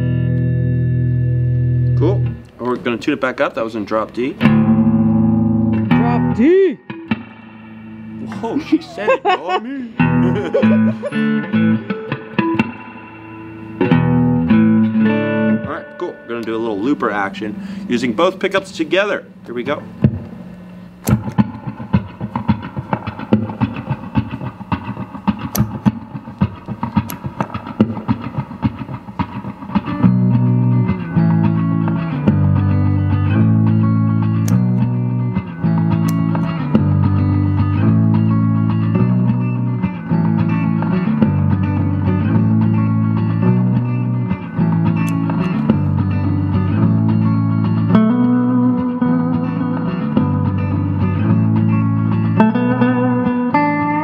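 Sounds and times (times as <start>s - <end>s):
electric guitar with looper: 0.0s - 54.0s.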